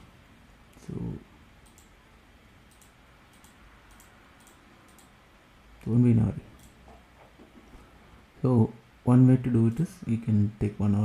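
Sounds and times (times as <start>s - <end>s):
computer mouse clicking: 1.6s - 1.9s, 2.7s - 5.2s, 6.6s - 7.0s.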